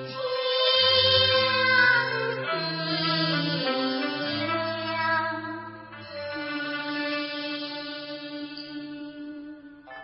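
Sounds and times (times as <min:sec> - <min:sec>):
opera music holding a long note: 0:00.0 - 0:10.0.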